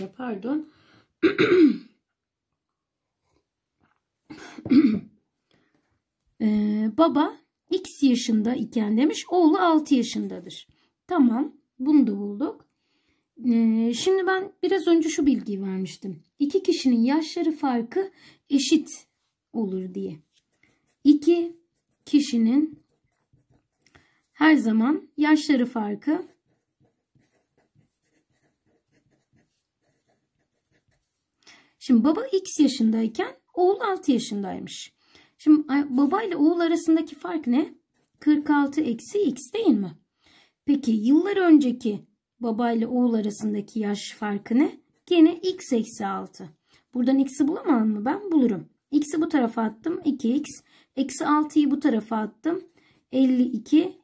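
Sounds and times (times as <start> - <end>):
marker pen scratching on paper: 9.3 - 10.7, 19.6 - 24.8, 25.4 - 31.4, 35.8 - 39.1.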